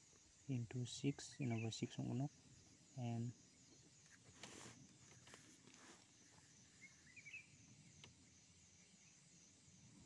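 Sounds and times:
faint bird chirps: 0.0s - 10.0s
faint high hiss: 0.0s - 10.0s.

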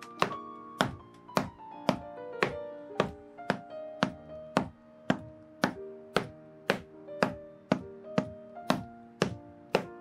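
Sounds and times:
background music: 0.0s - 10.0s
hammer striking rubber heel: 0.2s - 10.0s.

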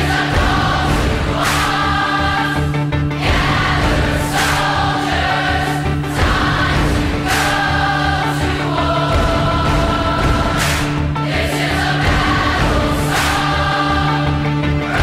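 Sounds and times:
choir singing: 0.0s - 15.0s.

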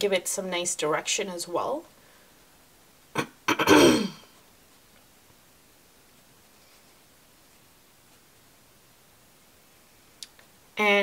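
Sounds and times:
woman coughing: 3.2s - 4.3s.

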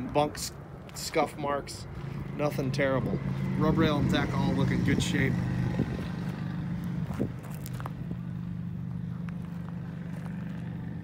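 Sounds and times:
footsteps on gravel: 0.0s - 3.6s, 4.2s - 11.0s
engine humming: 0.0s - 11.0s.

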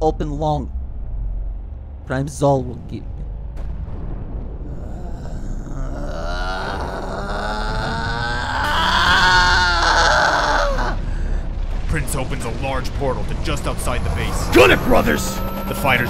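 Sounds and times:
low engine rumble: 0.0s - 6.2s
man groaning and yelling: 4.7s - 11.4s, 14.5s - 15.2s.

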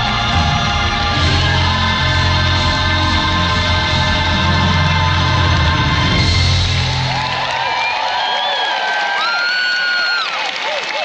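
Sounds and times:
loud music with heavy bass: 0.0s - 7.5s
audience cheering and applauding: 0.0s - 11.0s
shrill whistles: 7.7s - 10.3s.

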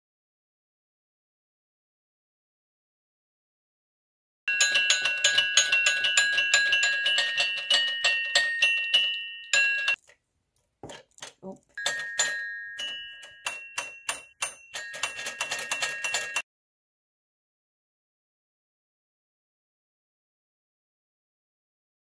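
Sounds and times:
toy piano chime-like notes: 4.5s - 10.0s, 11.8s - 16.4s.

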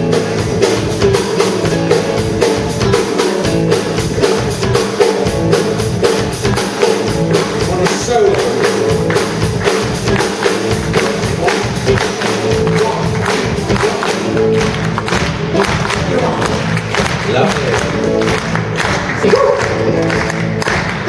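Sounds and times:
bass guitar: 0.0s - 21.0s
drum kit beat: 0.0s - 21.0s
electric guitar: 0.0s - 21.0s.

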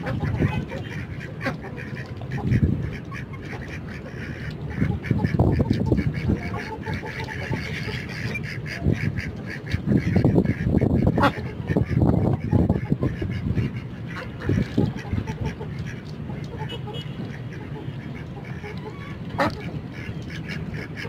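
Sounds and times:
bills pecking and dabbling: 0.0s - 21.0s
ducks quacking: 0.0s - 21.0s.

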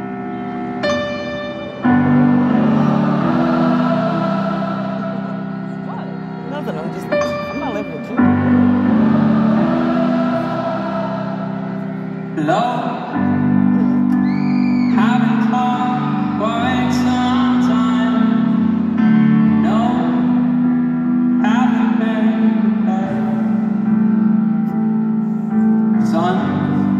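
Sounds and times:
low keyboard chords: 0.0s - 26.9s
person singing sustained notes: 2.0s - 7.3s, 8.1s - 20.6s.

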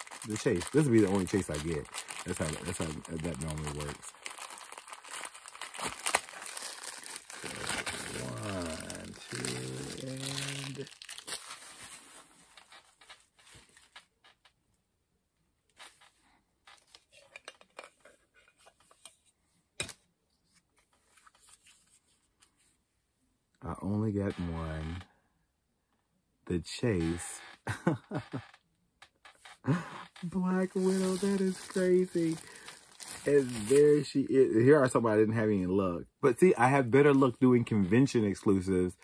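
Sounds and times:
packaging torn and crinkled: 0.0s - 14.0s, 30.3s - 34.1s.

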